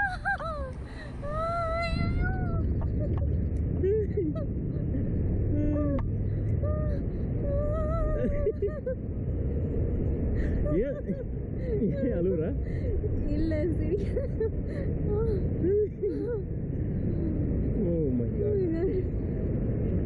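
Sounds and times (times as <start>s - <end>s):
wind rushing over microphone: 0.0s - 20.0s.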